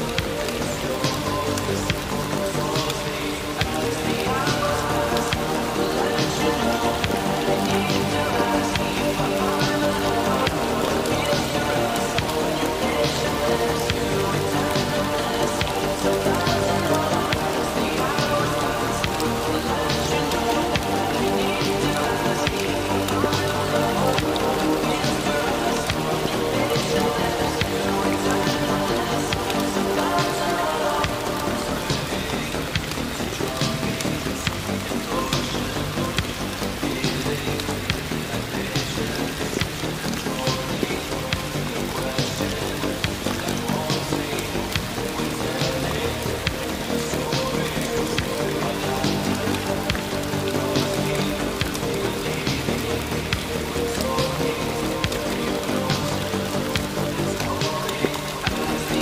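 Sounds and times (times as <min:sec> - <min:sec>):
slow music with long held notes: 0:00.0 - 0:59.0
steady rain: 0:00.0 - 0:59.0.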